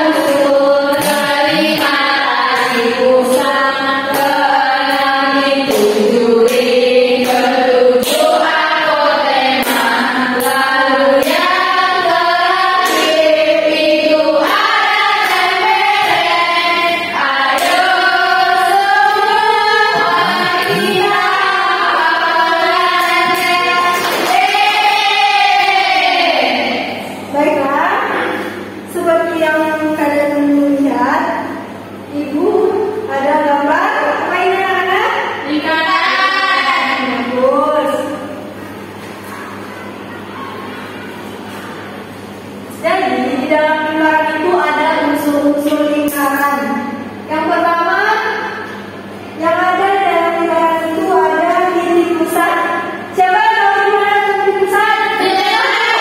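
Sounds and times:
women singing together: 0:00.0 - 0:27.9, 0:28.6 - 0:38.6, 0:42.6 - 0:56.0
hand claps: 0:05.6 - 0:08.5, 0:09.6 - 0:10.6, 0:12.8 - 0:13.2, 0:22.9 - 0:24.7.

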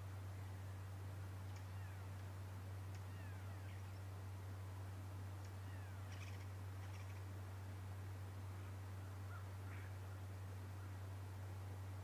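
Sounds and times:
faint clicks: 0:01.5 - 0:02.3, 0:02.9 - 0:03.1, 0:05.4 - 0:05.6.

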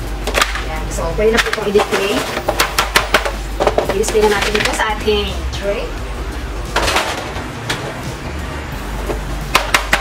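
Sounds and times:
cookies tapping on metal sheet: 0:01.3 - 0:05.0, 0:09.5 - 0:10.0.

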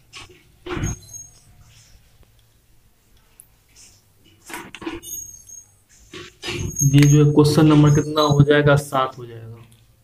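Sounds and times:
whiteboard marker squeaking: 0:00.0 - 0:02.0, 0:03.8 - 0:08.7
man speaking: 0:06.8 - 0:09.7.

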